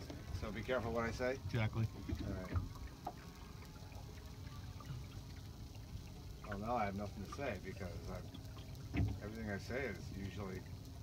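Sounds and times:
low steady rumble: 0.0 - 11.0
water lapping on boat hull: 0.0 - 11.0.

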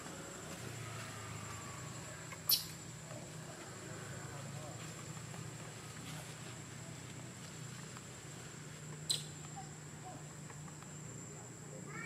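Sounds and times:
infant monkey squeaks: 2.4 - 2.8, 9.1 - 9.4.

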